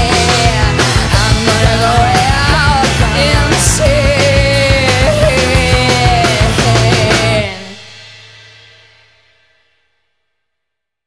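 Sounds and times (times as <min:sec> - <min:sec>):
rock chord and cymbal ringing: 0:00.0 - 0:10.3.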